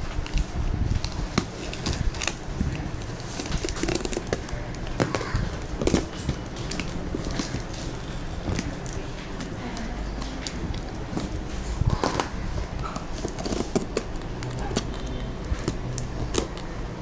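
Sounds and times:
packing tape and cardboard scraping: 0.0s - 17.0s.

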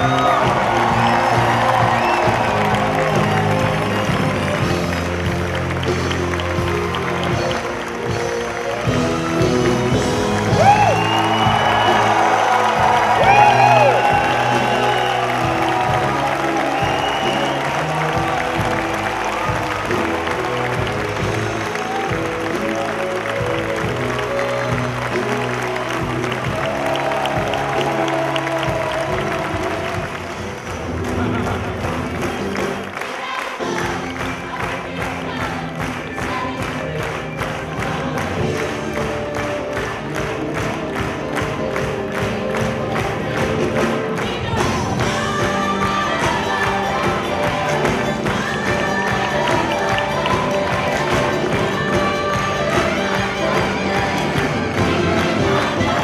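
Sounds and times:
orchestra playing: 0.0s - 34.8s, 35.6s - 56.0s
crowd applauding and cheering: 0.0s - 56.0s
shrill whoops: 10.5s - 18.0s.

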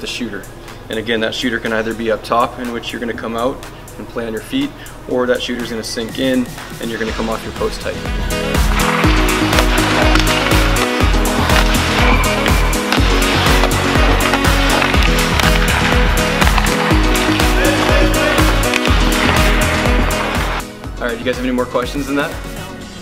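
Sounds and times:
music with steady beat: 4.7s - 23.0s.

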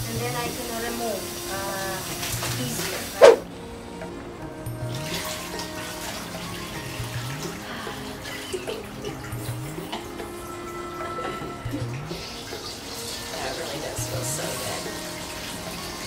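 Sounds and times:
soft background music: 0.0s - 16.0s
water pouring into basin: 4.8s - 16.0s.

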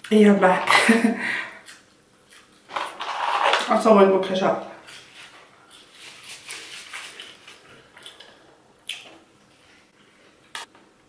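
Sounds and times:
chewing and mouth sounds: 5.7s - 9.2s.

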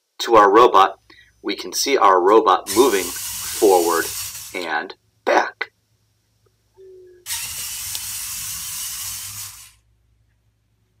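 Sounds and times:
robot motors and gears whirring: 7.3s - 9.8s.

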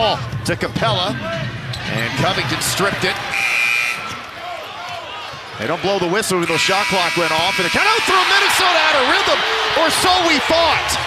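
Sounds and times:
crowd noise: 0.0s - 11.0s
high-pitched horn tone: 3.3s - 4.0s, 6.4s - 8.0s.

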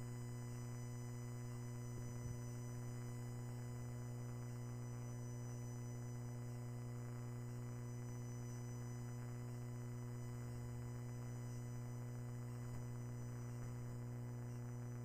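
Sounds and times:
low electrical hum: 0.0s - 15.0s.

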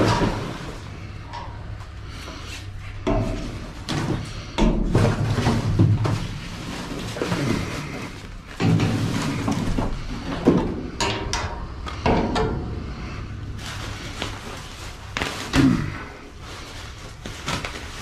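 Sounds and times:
plastic rustling: 2.0s - 10.9s, 12.9s - 18.0s.

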